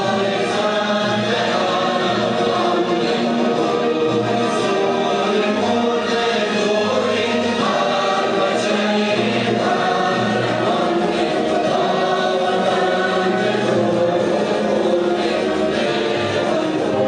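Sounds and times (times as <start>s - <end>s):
choir singing with accompaniment: 0.0s - 17.0s.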